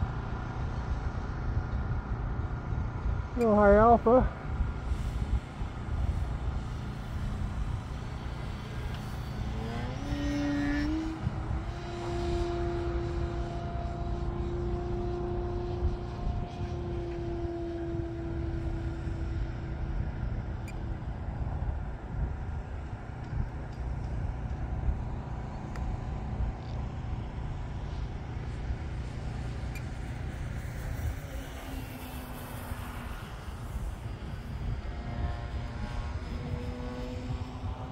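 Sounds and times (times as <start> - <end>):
model plane motor whine: 0.0 - 37.9
wind rumble on microphone: 0.0 - 37.9.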